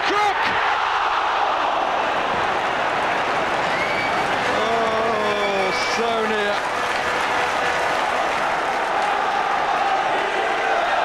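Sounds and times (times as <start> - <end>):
stadium crowd roaring: 0.0 - 11.0.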